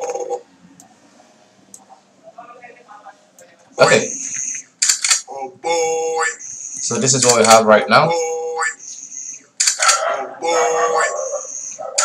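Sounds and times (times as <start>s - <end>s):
person speaking: 1.8s - 4.7s, 5.3s - 12.0s.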